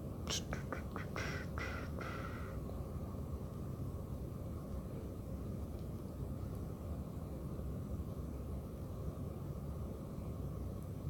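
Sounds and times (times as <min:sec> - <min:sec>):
short raspy calls: 0:00.3 - 0:02.6.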